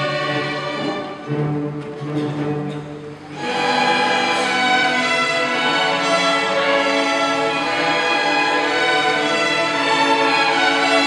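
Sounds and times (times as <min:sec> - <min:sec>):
string orchestra playing: 0:00.0 - 0:11.0.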